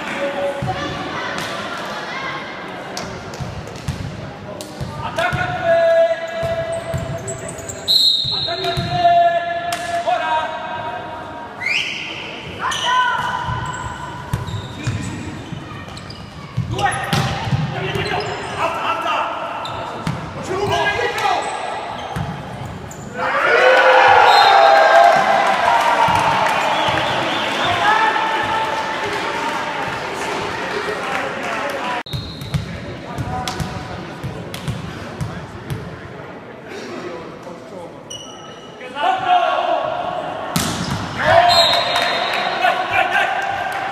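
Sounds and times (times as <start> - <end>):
volleyball hits in echoing hall: 0.0 - 7.4, 8.0 - 11.0, 11.8 - 18.7, 19.4 - 30.9, 32.0 - 36.1, 39.2 - 43.9
players shouting calls: 23.1 - 30.0, 41.1 - 43.9.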